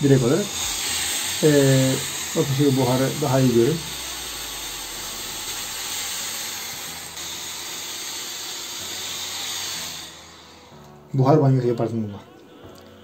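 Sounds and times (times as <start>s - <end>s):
steam iron hissing: 0.0s - 11.0s.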